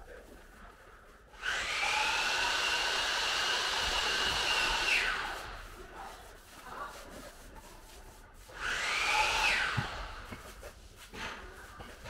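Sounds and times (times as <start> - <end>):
paintbrush scrubbing with squeak: 3.4 - 12.0.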